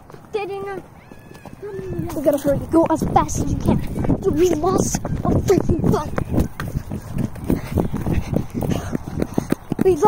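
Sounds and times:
running footsteps on dirt: 0.0 - 10.0.

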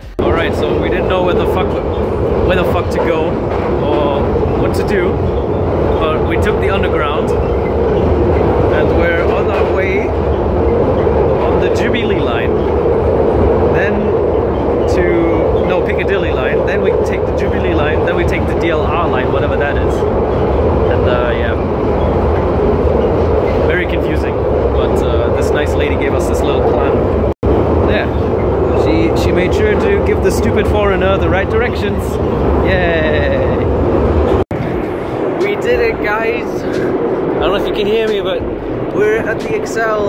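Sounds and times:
indistinct voices: 0.0 - 40.0
train rumble inside carriage: 0.0 - 40.0.

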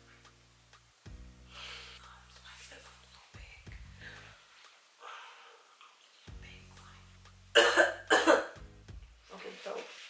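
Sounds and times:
background music: 0.0 - 4.5, 6.2 - 9.4
woman coughing sharply: 7.6 - 8.6.

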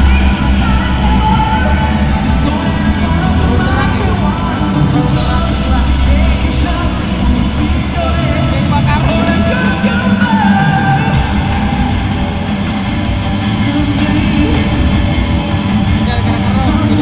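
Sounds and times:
person singing: 0.0 - 12.5, 13.3 - 15.2
live rock band playing: 0.0 - 17.0.

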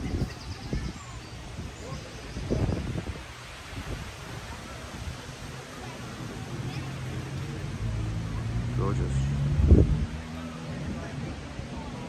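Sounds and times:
people talking: 0.0 - 3.1, 4.1 - 9.5, 10.2 - 12.0
wind buffeting microphone: 0.0 - 7.0, 9.4 - 12.0.

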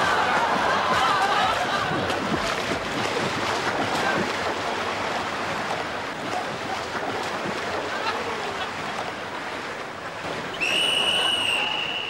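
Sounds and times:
pool water splashing: 0.0 - 12.0.

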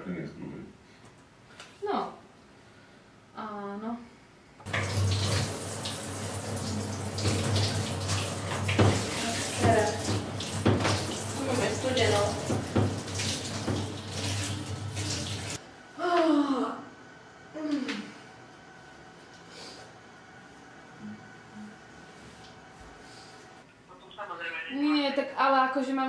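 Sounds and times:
shower water running: 4.6 - 15.6
steady low hum: 14.5 - 24.4.

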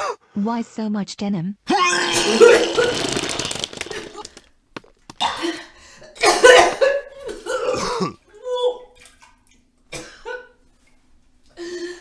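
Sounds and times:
man coughing harshly: 6.2 - 8.2.

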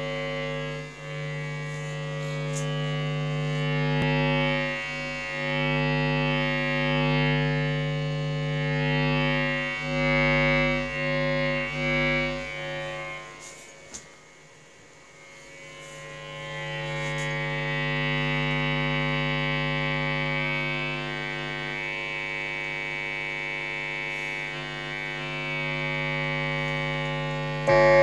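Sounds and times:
guitar amp mains hum: 0.0 - 28.0.

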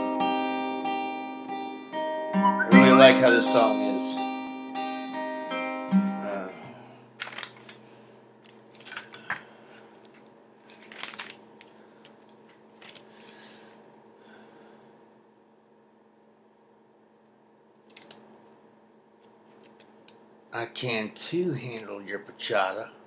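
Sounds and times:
faint steady hum: 6.4 - 23.0.

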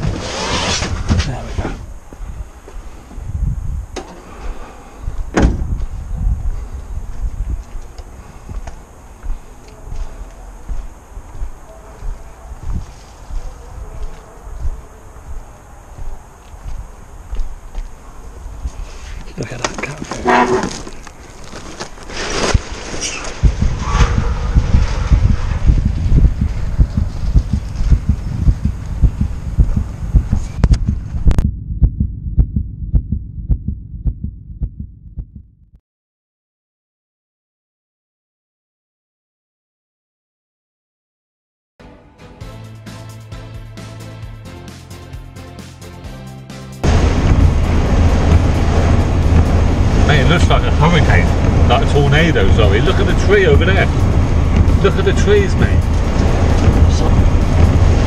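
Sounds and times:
wind on camera: 0.8 - 21.5, 22.4 - 35.2, 46.8 - 58.0
handling rumble: 0.9 - 34.9, 46.8 - 58.0
steady low beat: 5.1 - 16.9, 23.4 - 35.8, 46.8 - 58.0
rubbish being rummaged through: 19.6 - 23.2.

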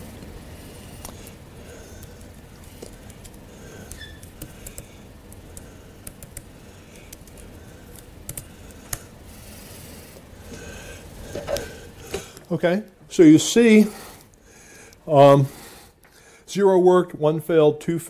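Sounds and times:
low room hum: 0.0 - 18.0
keyboard keys clicking: 6.0 - 6.5, 8.3 - 9.0.

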